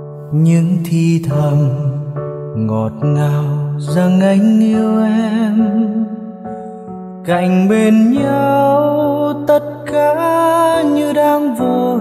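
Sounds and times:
keyboard accompaniment: 0:00.0 - 0:12.0
man singing: 0:00.2 - 0:06.2, 0:07.2 - 0:12.0.

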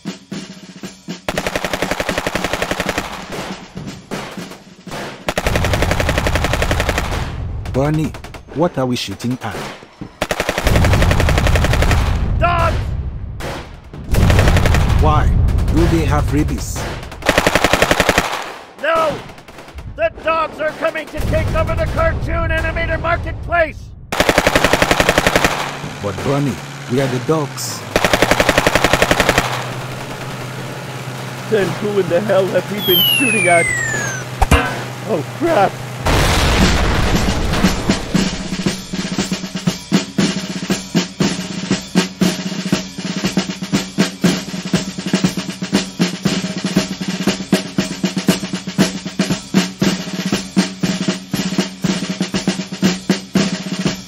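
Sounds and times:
cartoon automatic rifle fire: 0:01.3 - 0:07.4, 0:09.5 - 0:12.2, 0:13.5 - 0:15.9, 0:17.2 - 0:19.7, 0:24.1 - 0:30.7, 0:32.8 - 0:35.0.

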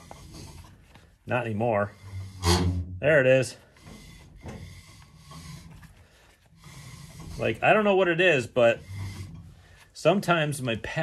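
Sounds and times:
brake pads rubbing on rotor: 0:00.0 - 0:11.0.

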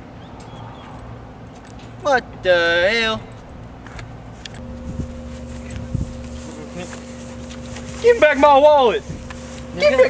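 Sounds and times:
low background hum: 0:00.2 - 0:10.0.

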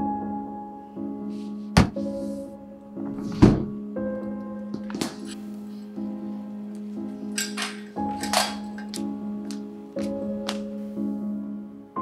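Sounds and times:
sombre music with sustained tones: 0:00.0 - 0:12.0
heavy thud: 0:01.8 - 0:02.0.

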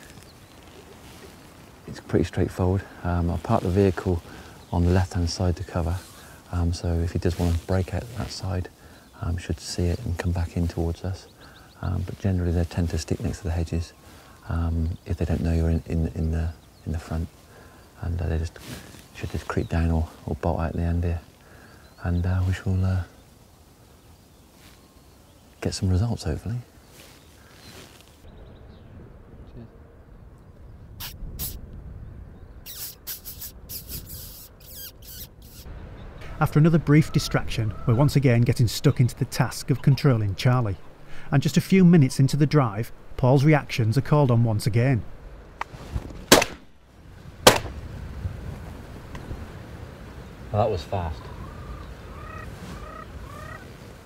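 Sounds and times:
bird calling: 0:00.0 - 0:09.4, 0:10.0 - 0:12.1, 0:32.4 - 0:42.6, 0:49.0 - 0:54.0
short high chirping calls: 0:31.0 - 0:31.6, 0:32.6 - 0:35.7.

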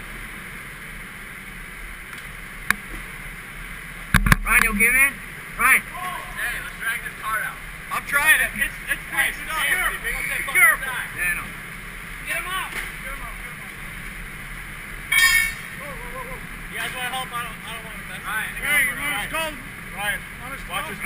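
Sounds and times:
people calling out: 0:05.7 - 0:06.8, 0:15.1 - 0:16.5
loud high-pitched sound: 0:15.1 - 0:15.9.

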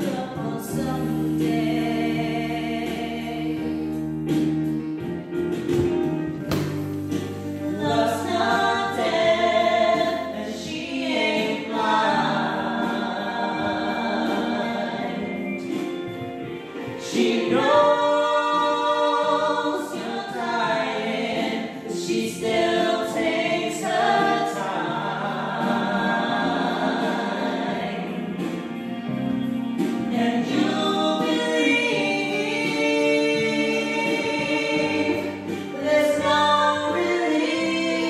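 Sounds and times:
man and woman singing duet: 0:00.0 - 0:04.0, 0:07.6 - 0:16.0, 0:16.7 - 0:28.8, 0:30.0 - 0:38.0.

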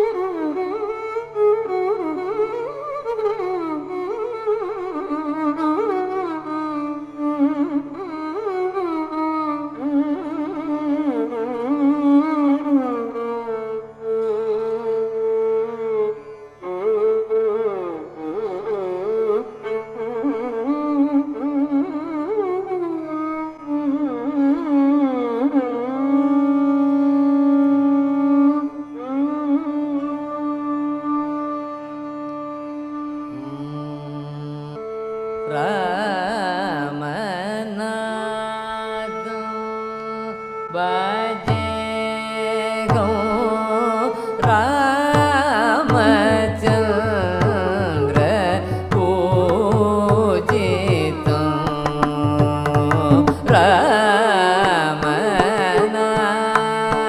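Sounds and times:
violin playing ornamented melody: 0:00.0 - 0:57.0.

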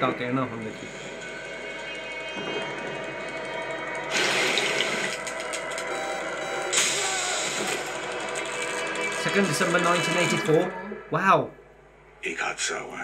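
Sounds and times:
tense music score: 0:00.0 - 0:13.0.

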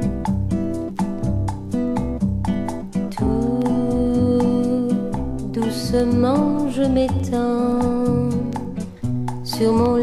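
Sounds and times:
instrumental pop music: 0:00.0 - 0:10.0.

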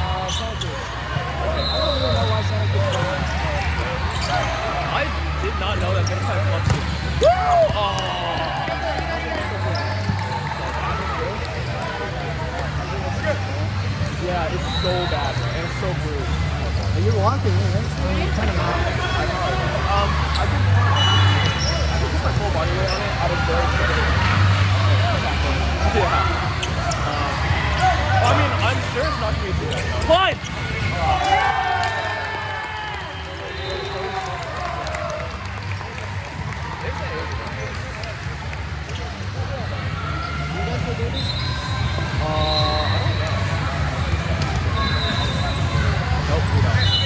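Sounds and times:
sneakers squeaking on floor: 0:00.0 - 0:04.7, 0:05.7 - 0:07.1, 0:20.2 - 0:23.2, 0:26.5 - 0:31.4.

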